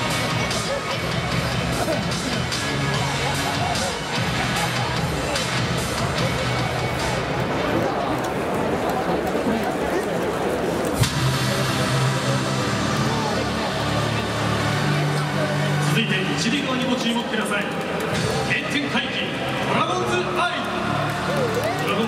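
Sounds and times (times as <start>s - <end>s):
crowd noise: 0.0s - 22.0s
stadium music over loudspeakers: 0.0s - 22.0s.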